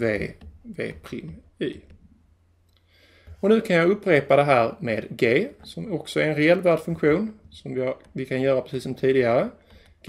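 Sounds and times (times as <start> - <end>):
stylus clicking on drawing tablet: 0.1 - 4.3, 5.3 - 10.0.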